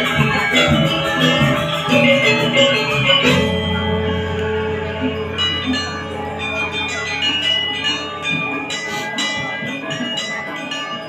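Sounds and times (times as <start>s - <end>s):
gamelan orchestra playing: 0.0s - 11.0s.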